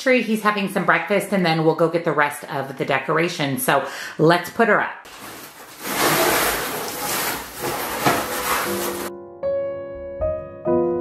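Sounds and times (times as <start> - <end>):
artificial tree branches rustling: 5.1 - 9.1.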